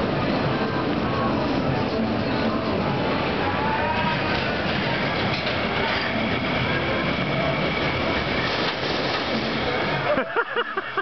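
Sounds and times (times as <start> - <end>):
roller coaster wheels rattling on rail: 0.0 - 11.0.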